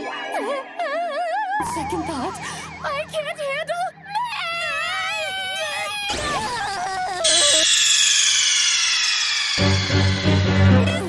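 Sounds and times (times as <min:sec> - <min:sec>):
shrill falling squeal: 0:04.1 - 0:11.0
short wavering cry: 0:06.6 - 0:09.9.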